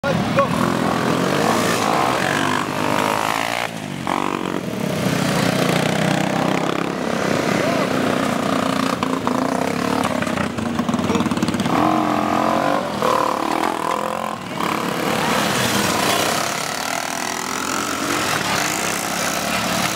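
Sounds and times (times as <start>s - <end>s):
quad bike engines revving: 0.0s - 19.9s.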